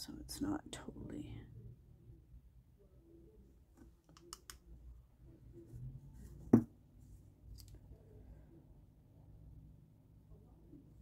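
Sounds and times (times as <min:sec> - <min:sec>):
small clicks and taps: 0:03.8 - 0:04.6.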